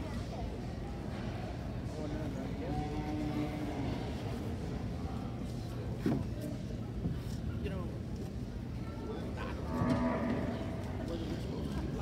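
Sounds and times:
cow mooing: 0:09.7 - 0:10.8.

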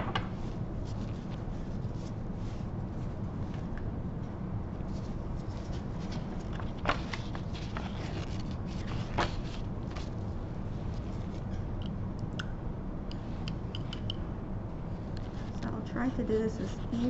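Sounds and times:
low room hum: 0:00.0 - 0:17.0
paper rustling and scraping: 0:04.9 - 0:11.6.

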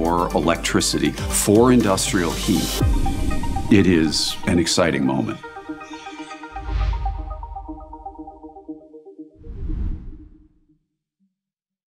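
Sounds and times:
background music: 0:00.0 - 0:10.3
whoosh with deep rumble: 0:09.4 - 0:10.5.

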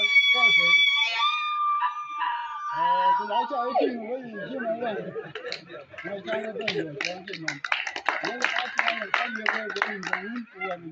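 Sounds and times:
dog howling: 0:00.0 - 0:04.4
man's voice: 0:02.8 - 0:07.6, 0:08.2 - 0:10.9.

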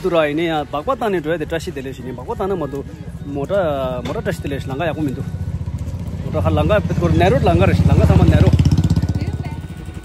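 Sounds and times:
motorcycle engine running: 0:02.4 - 0:10.0.

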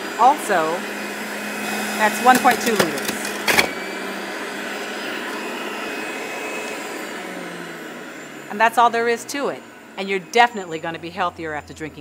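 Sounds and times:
juicer motor humming and whirring: 0:00.0 - 0:12.0.

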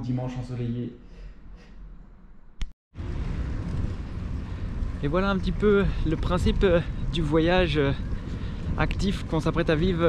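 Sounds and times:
wind buffeting microphone: 0:03.0 - 0:10.0.

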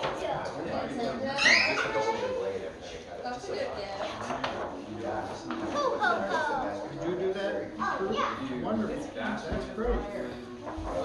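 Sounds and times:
chatter of voices: 0:00.0 - 0:11.0
children's voices: 0:05.6 - 0:06.9.

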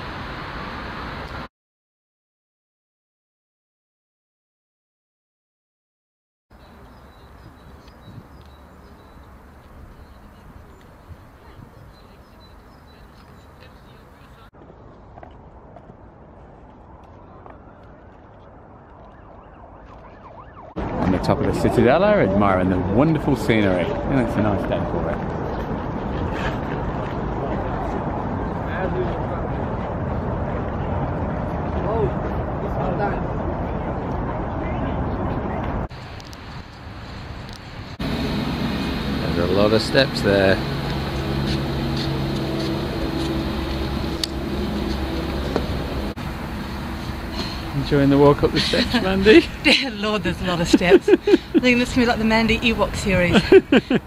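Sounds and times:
low hum of city traffic: 0:00.0 - 0:01.5, 0:06.5 - 0:54.0
faint emergency siren: 0:17.1 - 0:22.9, 0:23.5 - 0:25.2.

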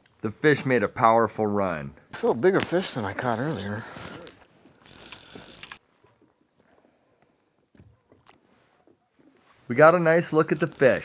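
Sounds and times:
fishing reel drag buzzing: 0:04.8 - 0:05.8, 0:10.5 - 0:11.0
faint clicks: 0:10.5 - 0:11.0.

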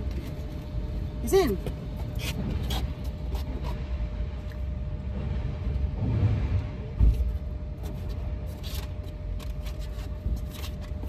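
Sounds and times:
low rumble inside car: 0:00.0 - 0:11.0
heavy thump: 0:05.2 - 0:07.5.

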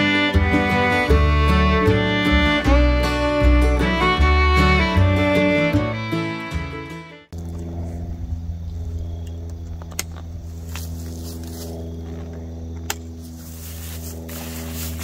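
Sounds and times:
fiddle tune: 0:00.0 - 0:07.3
low mechanical motor hum: 0:07.3 - 0:15.0.

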